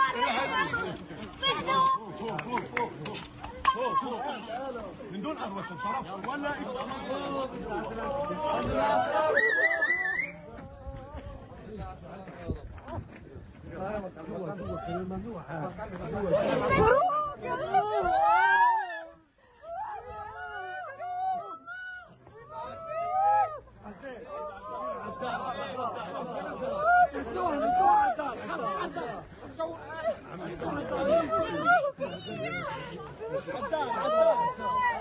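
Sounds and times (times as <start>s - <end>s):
people chattering: 0.0s - 35.0s
overlapping voices: 0.9s - 4.2s.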